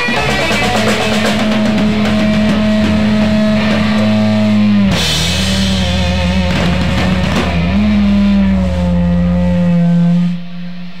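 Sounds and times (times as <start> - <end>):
drum and cymbal hits: 0.0 - 11.0
electric guitars ringing: 0.0 - 11.0
low bass note: 0.7 - 11.0.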